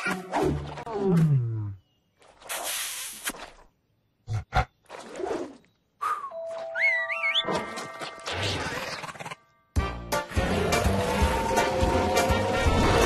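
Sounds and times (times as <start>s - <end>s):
cartoon music with whistle glide: 6.0s - 13.0s.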